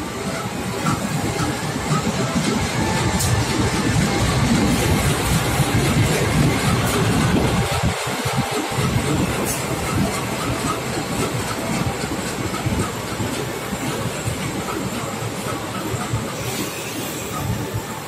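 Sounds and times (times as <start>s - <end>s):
diesel locomotive engine: 0.0s - 18.0s
train wheels rumbling on rails: 0.0s - 18.0s.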